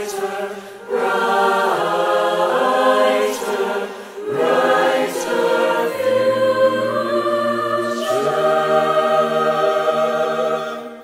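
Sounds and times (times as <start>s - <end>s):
mixed choir singing a cappella: 0.0s - 11.0s.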